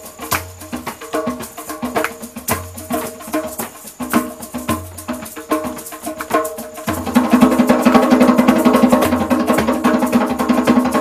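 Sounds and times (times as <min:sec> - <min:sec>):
djembe hand drumming: 0:00.0 - 0:11.0.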